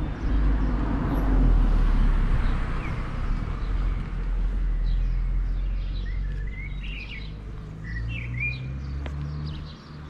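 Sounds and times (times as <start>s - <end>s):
small songbirds chirping: 0.0s - 10.0s.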